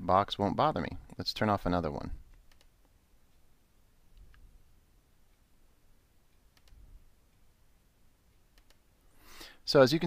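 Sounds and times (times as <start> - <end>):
room hiss: 0.0 - 10.0
computer mouse clicks: 2.3 - 3.0, 6.5 - 6.8, 8.5 - 8.8.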